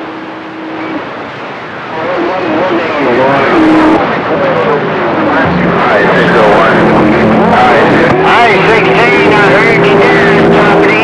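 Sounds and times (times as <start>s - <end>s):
radio static hiss: 0.0s - 11.0s
garbled distorted radio voices: 1.9s - 11.0s
wavering radio whistles: 5.9s - 11.0s.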